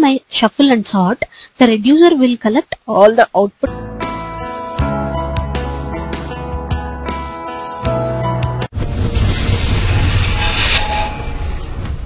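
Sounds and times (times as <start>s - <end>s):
deep rumble: 8.8s - 12.0s
loud rushing whoosh: 8.8s - 12.0s.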